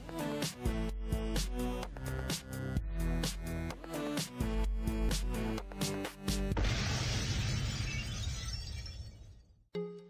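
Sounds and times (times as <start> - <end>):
explosion with crackling debris: 6.6 - 9.4.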